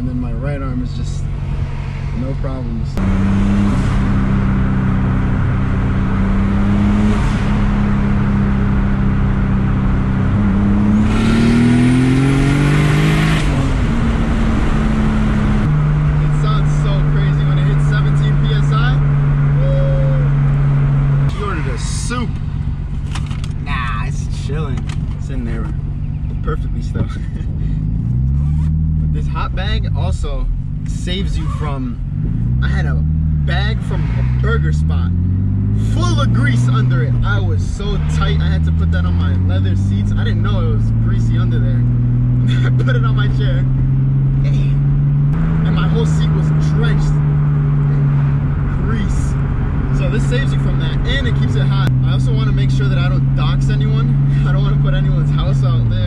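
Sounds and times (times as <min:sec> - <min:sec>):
car engine from inside cabin: 0:00.0 - 0:56.0.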